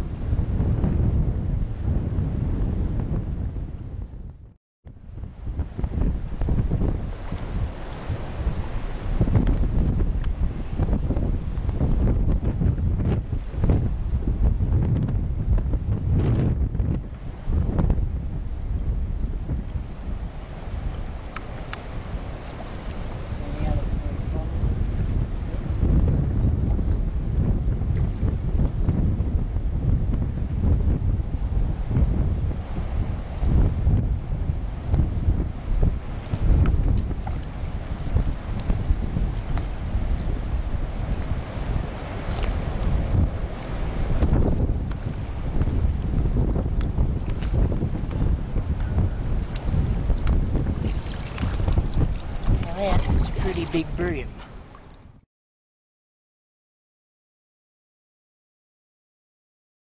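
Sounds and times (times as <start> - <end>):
wind buffeting microphone: 0.0 - 55.2.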